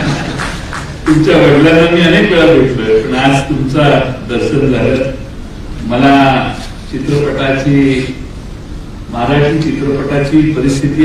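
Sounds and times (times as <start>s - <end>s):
man speaking into a microphone: 1.0s - 8.3s, 9.1s - 11.0s.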